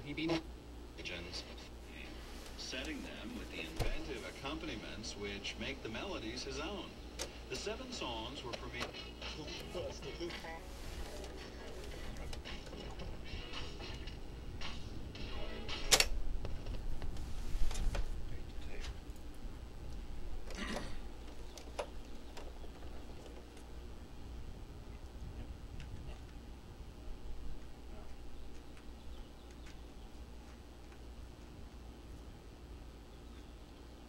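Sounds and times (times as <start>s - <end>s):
music from speaker: 8.7s - 10.6s, 11.3s - 16.1s
cassette deck clicks and clunks: 15.7s - 16.8s, 21.2s - 23.7s.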